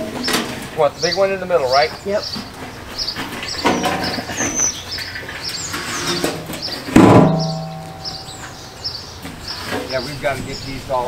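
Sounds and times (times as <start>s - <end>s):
metal window well clanging: 3.5s - 8.6s
metallic ringing hum: 7.0s - 9.0s.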